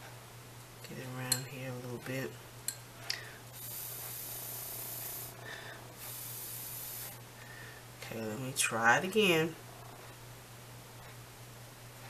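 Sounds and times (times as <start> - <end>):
airy breath hiss: 3.0 - 7.9.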